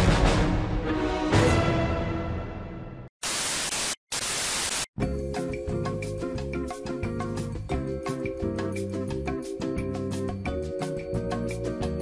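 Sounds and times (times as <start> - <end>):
static hiss bursts: 3.2 - 5.0.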